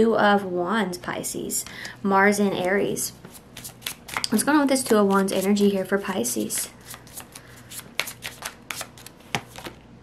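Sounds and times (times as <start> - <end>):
cards being shuffled by hand: 2.6 - 9.8.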